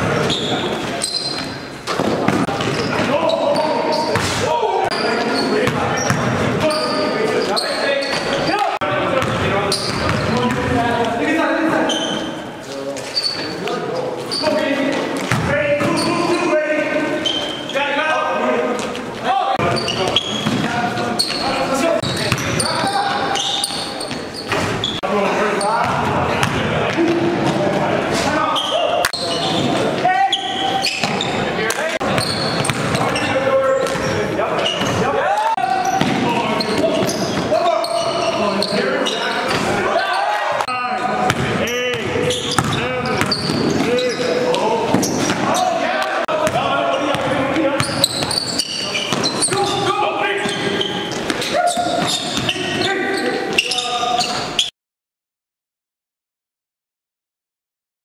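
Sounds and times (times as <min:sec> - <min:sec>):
players calling out: 0:00.0 - 0:54.7
basketball bouncing on gym floor: 0:05.6 - 0:06.7, 0:09.2 - 0:10.8, 0:15.2 - 0:16.1, 0:19.6 - 0:20.7, 0:25.8 - 0:27.6, 0:32.1 - 0:34.1, 0:35.8 - 0:37.5, 0:41.3 - 0:43.9.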